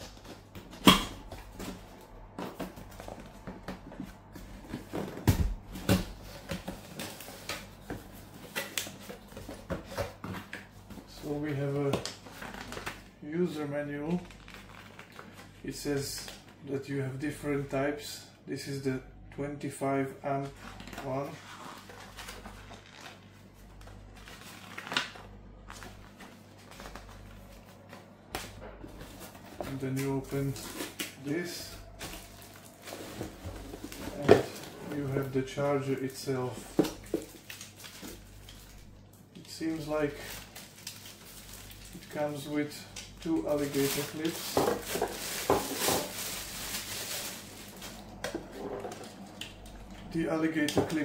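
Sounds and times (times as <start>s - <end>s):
plastic bag crinkling: 29.0s - 51.0s.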